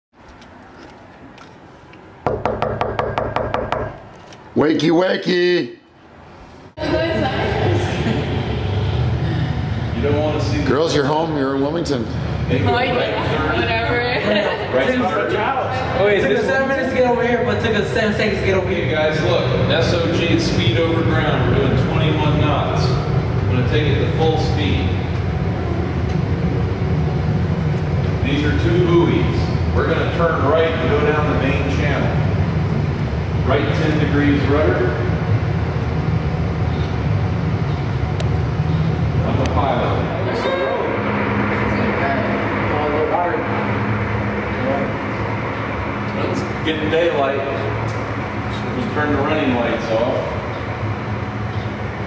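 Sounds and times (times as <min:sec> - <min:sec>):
hand knocking on wooden door: 0:02.3 - 0:04.0
ship engine low rumble: 0:19.3 - 0:52.0.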